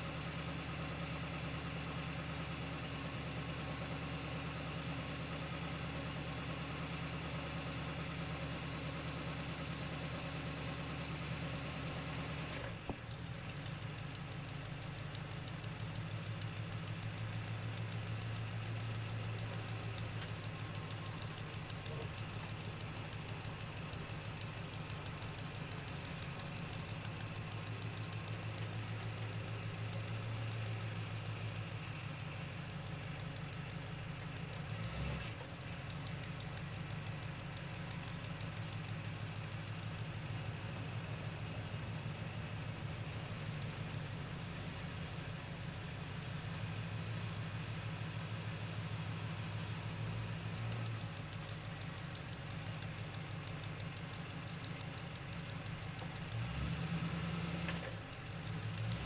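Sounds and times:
engine idling with knocking: 0:00.0 - 0:59.0.

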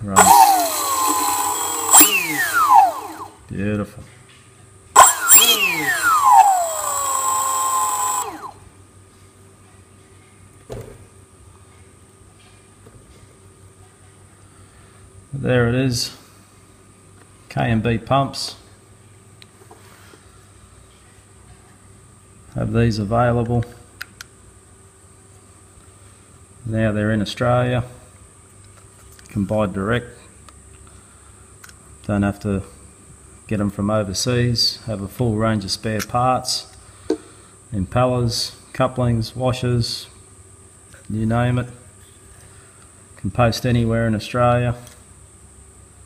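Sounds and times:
electric motor whine: 0:00.1 - 0:03.5, 0:05.0 - 0:08.6.

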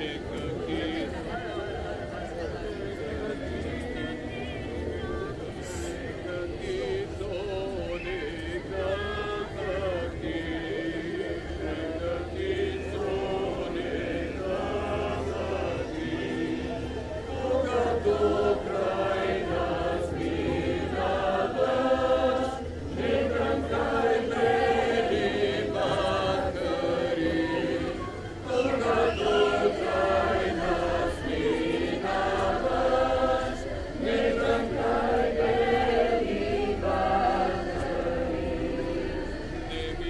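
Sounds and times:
group of voices singing: 0:00.0 - 0:40.0.

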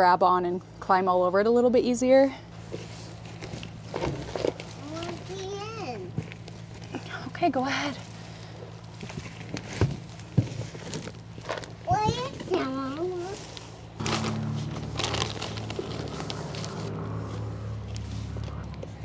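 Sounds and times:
steady low hum: 0:00.0 - 0:19.0
plastic bag rustling: 0:02.6 - 0:07.0, 0:07.8 - 0:18.6
hands rustling potting soil: 0:12.5 - 0:19.0.

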